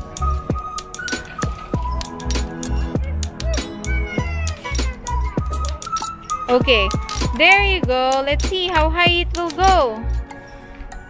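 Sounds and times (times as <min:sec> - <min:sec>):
music with bass beat: 0:00.0 - 0:05.9, 0:06.5 - 0:10.3
clicking percussion: 0:00.0 - 0:11.0.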